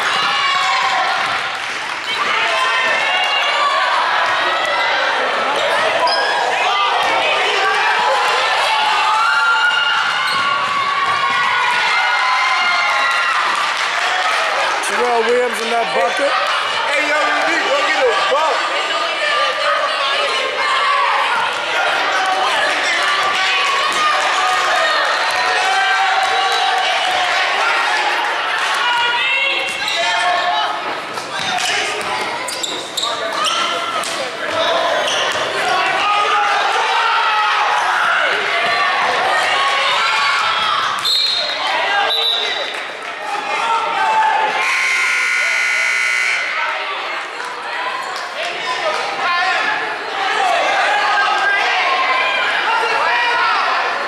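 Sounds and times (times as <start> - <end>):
scoreboard horn: 44.6 - 46.6.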